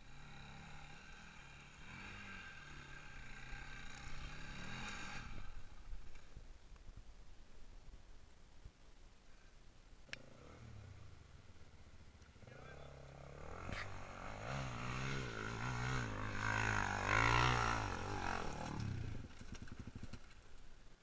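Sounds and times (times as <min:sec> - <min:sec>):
dirt bike engine revving: 0:00.0 - 0:05.8, 0:12.4 - 0:20.4.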